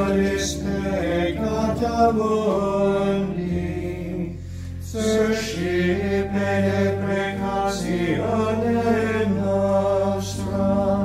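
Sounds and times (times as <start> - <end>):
low organ note: 0.0 - 11.0
plainchant singing: 0.0 - 11.0.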